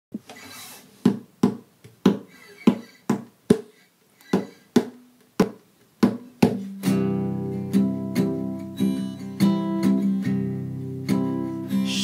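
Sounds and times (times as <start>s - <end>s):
muted percussive acoustic guitar strokes: 2.2s - 12.0s.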